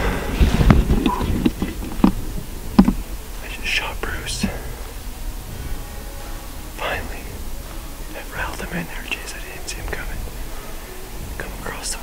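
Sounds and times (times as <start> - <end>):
low background hiss: 0.0 - 12.0
man whispering: 3.4 - 5.0, 6.8 - 7.4, 8.1 - 10.3, 11.4 - 12.0.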